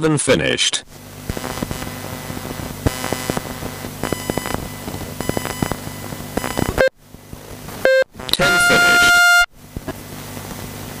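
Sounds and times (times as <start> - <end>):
low steady hum: 0.7 - 11.0
electronic horn tone: 2.9 - 6.9, 7.8 - 9.5.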